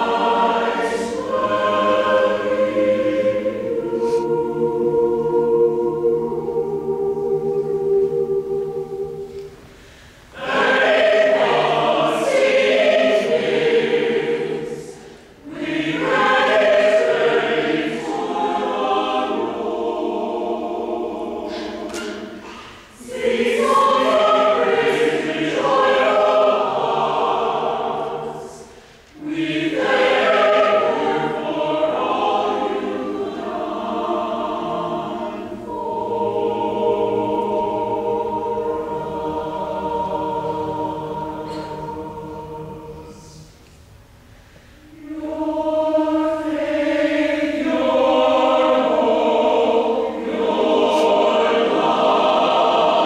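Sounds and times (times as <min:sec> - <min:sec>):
mixed choir singing: 0:00.0 - 0:53.0.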